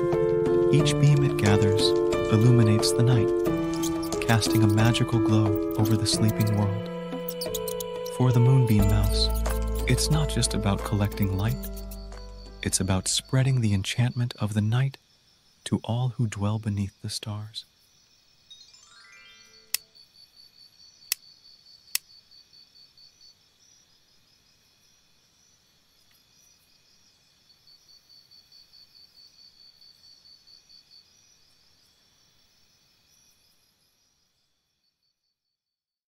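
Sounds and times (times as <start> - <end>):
quiet soundtrack music: 0.0 - 14.3
high pulsing cricket-like chirp: 0.0 - 35.8
sharp clicks: 3.6 - 12.3
rising chime-like tones: 18.5 - 19.7.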